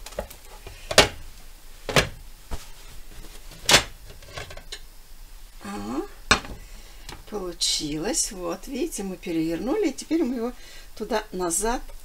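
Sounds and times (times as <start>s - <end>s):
pan and plate knocking: 6.3s - 6.6s.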